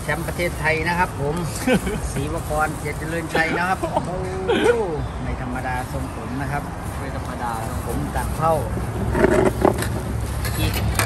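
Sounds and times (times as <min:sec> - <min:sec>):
low hum of traffic: 0:00.0 - 0:11.0.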